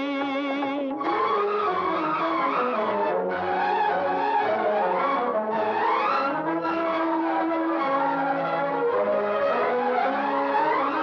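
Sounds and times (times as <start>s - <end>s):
sung song: 0.0s - 3.3s
orchestral tones: 0.0s - 11.0s.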